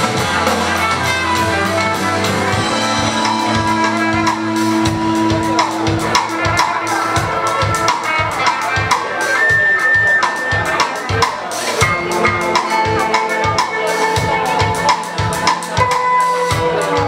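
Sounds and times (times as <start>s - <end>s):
drum kit beat: 0.0s - 17.0s
rock band playing: 0.0s - 17.0s
held high note: 0.4s - 11.2s.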